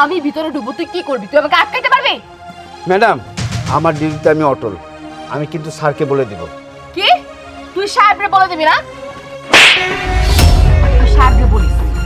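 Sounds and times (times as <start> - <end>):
whip-like slap crack: 9.5 - 10.1.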